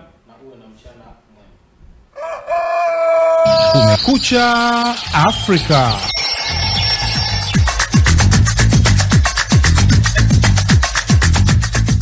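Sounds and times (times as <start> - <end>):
rooster crowing: 2.1 - 4.0.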